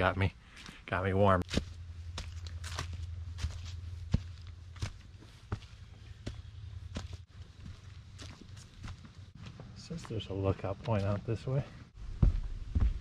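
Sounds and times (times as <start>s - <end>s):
low steady rumble: 1.4s - 9.4s
footsteps on dry leaves: 1.4s - 9.6s.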